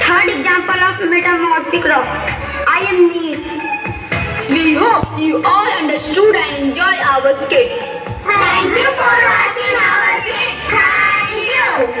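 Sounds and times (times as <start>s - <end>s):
children singing: 8.2s - 12.0s.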